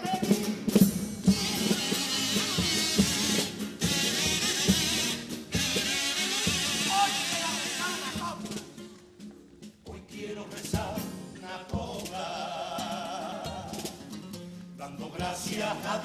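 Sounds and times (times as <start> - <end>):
bass drum: 0.0 - 8.9
snare drum: 0.0 - 14.2
kazoos playing a tune: 1.3 - 8.5.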